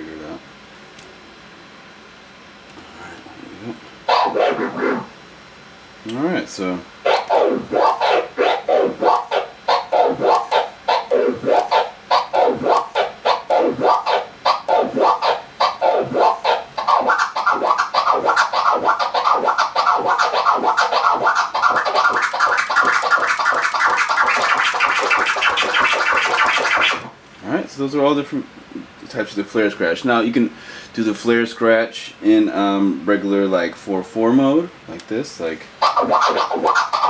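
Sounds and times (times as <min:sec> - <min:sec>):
vinyl record scratching: 0:03.4 - 0:05.2, 0:06.1 - 0:27.1, 0:35.8 - 0:37.0.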